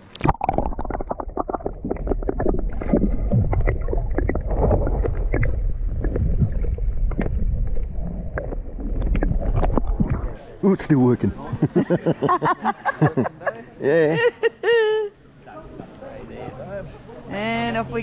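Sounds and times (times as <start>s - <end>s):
bubbling clicks: 0.0s - 10.4s
muffled underwater rumble: 0.1s - 10.6s.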